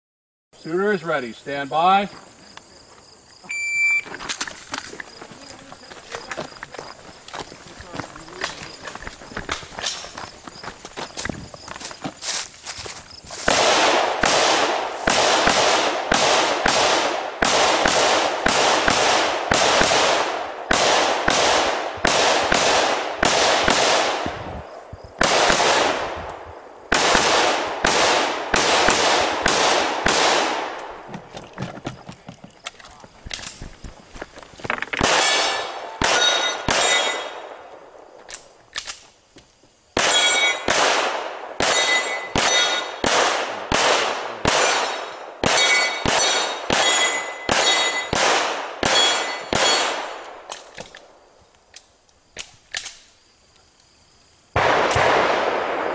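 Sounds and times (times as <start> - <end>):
rifle shots with echo: 13.4 - 24.4, 25.2 - 31.0, 35.0 - 37.6, 40.0 - 50.5, 54.6 - 55.9
metallic pings from steel targets: 35.2 - 37.4, 40.1 - 40.7, 41.7 - 43.0, 44.6 - 48.2, 48.9 - 50.0.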